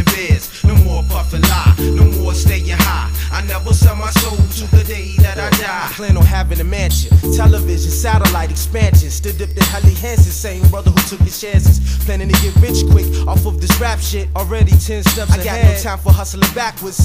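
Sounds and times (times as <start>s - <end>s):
drum beat: 0.0s - 17.0s
rapping over a beat: 0.0s - 17.0s
bass line: 0.6s - 16.4s.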